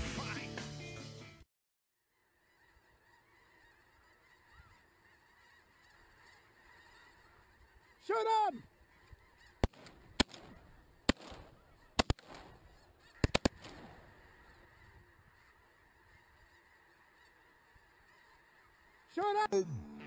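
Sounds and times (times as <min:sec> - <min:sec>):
geese honking: 0:02.1 - 0:19.5
shotgun shots: 0:09.6 - 0:14.1.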